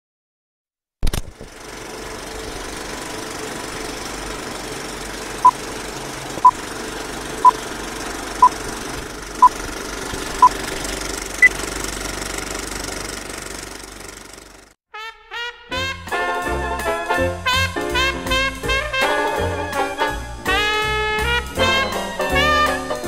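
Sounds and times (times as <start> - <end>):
film projector clatter: 1.0 - 14.8.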